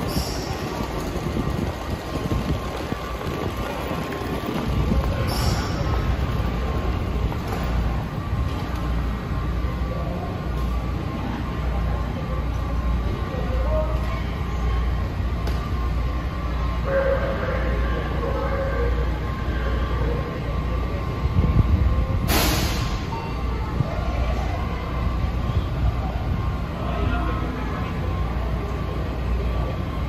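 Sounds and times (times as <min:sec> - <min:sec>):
low rumble of train equipment: 0:00.0 - 0:30.0
thin steady whine: 0:00.0 - 0:30.0.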